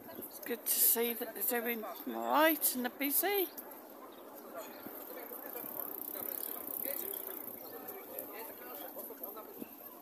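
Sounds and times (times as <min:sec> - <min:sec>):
faint voices: 0:00.0 - 0:10.0
mobility scooter running: 0:05.3 - 0:08.3.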